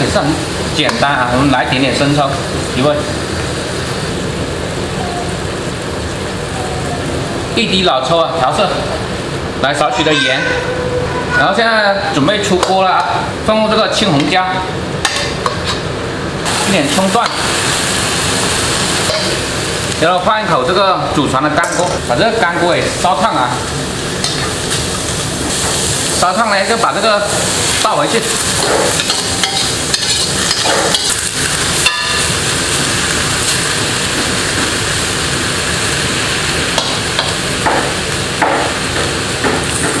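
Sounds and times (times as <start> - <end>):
stir-fry sizzling in a wok: 0.0 - 9.9, 12.1 - 40.0.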